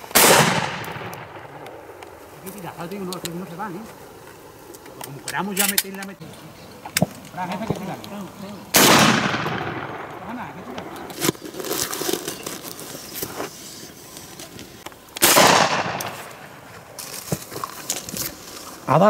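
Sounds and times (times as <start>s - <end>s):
shotgun shots with echo: 0.1s - 1.5s, 8.7s - 10.1s, 15.2s - 16.3s.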